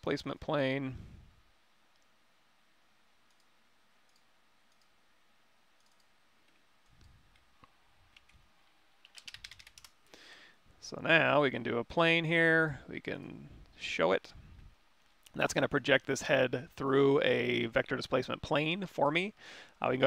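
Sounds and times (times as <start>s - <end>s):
keyboard and mouse clicking: 3.3s - 3.5s, 5.8s - 7.5s, 9.0s - 10.0s.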